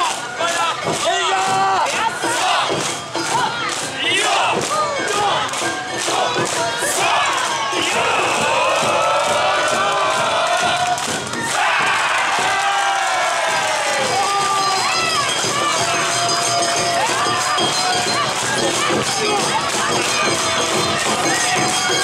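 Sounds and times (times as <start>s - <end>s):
group shouting rhythmic calls: 0.0s - 22.0s
long drawn-out group calls: 0.0s - 22.0s.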